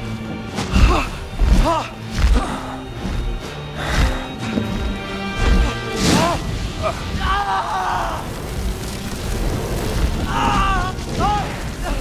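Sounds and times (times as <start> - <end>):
large fire burning: 0.0 - 12.0.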